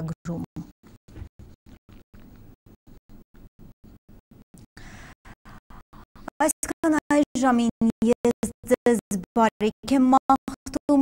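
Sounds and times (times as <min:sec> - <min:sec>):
woman speaking: 0:00.0 - 0:00.6, 0:06.4 - 0:11.0.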